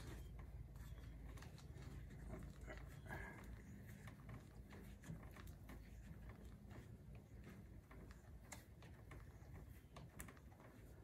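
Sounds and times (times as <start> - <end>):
faint rustling: 0.0 - 11.0.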